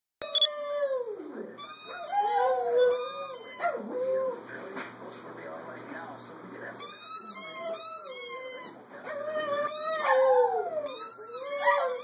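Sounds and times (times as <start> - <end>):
dogs whining: 0.2 - 4.4, 7.1 - 12.0
small dogs howling: 2.0 - 4.4, 9.0 - 12.0.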